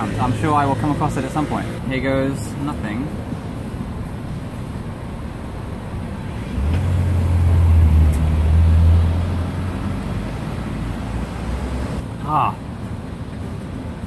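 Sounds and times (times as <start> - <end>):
road traffic: 0.0 - 14.0
passing vehicle engine drone: 5.8 - 12.1.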